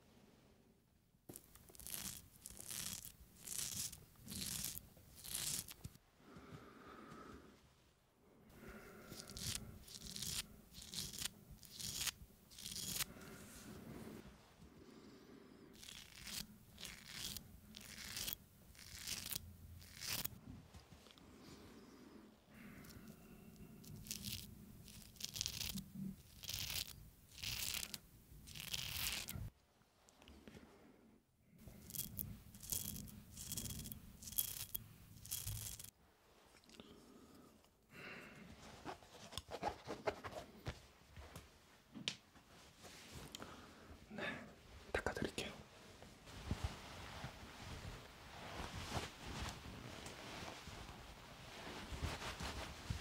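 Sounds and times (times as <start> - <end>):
razor scraping: 1.3 - 5.9, 9.1 - 13.1, 15.8 - 20.4, 23.8 - 29.5, 31.6 - 35.9.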